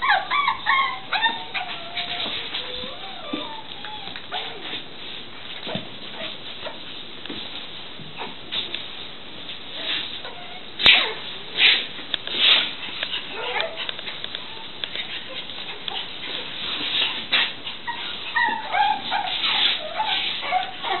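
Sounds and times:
dog whining and yelping: 0.0 - 4.7, 13.2 - 21.0.

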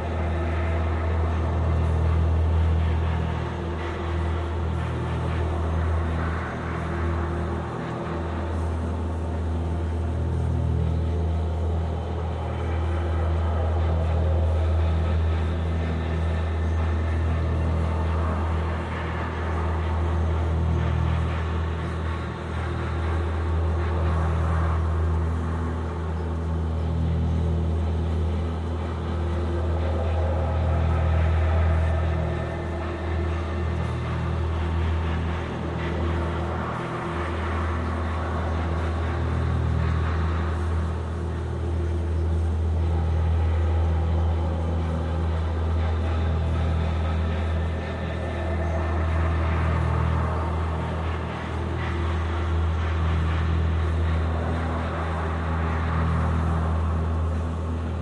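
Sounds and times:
electronic drone music: 0.0 - 58.0.

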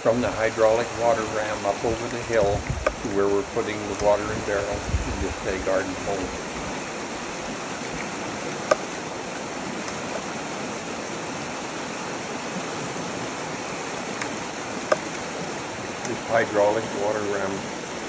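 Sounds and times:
river water rushing: 0.0 - 18.0.

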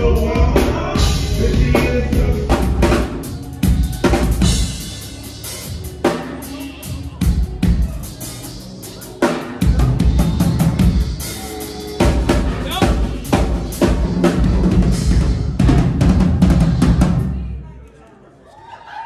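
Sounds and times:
steady low bass: 0.0 - 3.7
drum kit played hard: 0.0 - 17.5.

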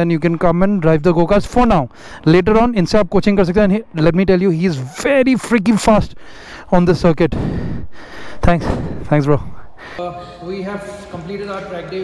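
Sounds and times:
man speaking: 0.0 - 7.4, 8.4 - 12.0.

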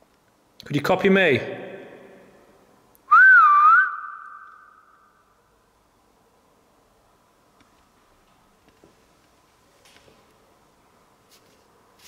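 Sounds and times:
person whistling wavering note: 3.1 - 5.1.

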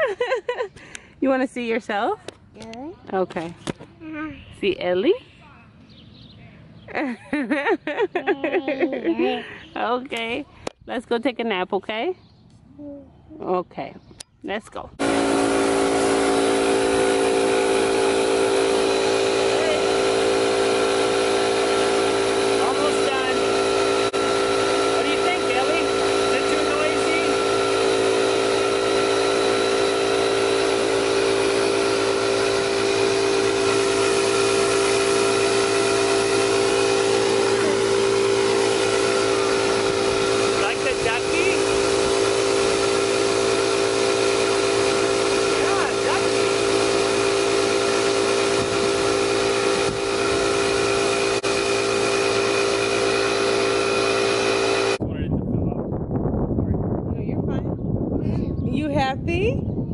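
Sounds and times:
air compressor running: 0.0 - 10.9, 14.7 - 55.2.

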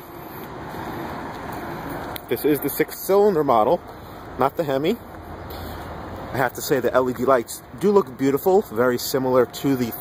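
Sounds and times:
rushing outdoor background noise: 0.0 - 10.0.

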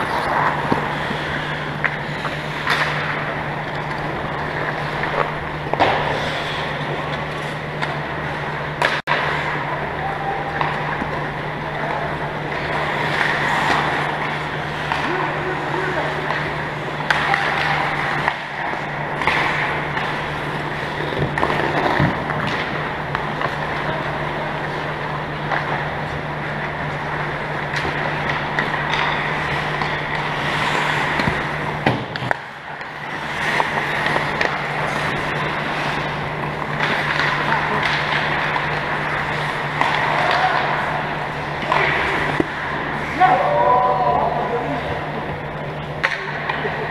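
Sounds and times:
skates scraping ice: 0.0 - 46.9
steady low hum: 0.0 - 46.9
sticks and puck clacking: 0.0 - 46.9.

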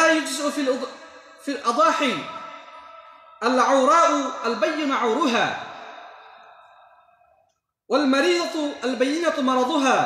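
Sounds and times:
man's voice with echo: 0.0 - 10.0.

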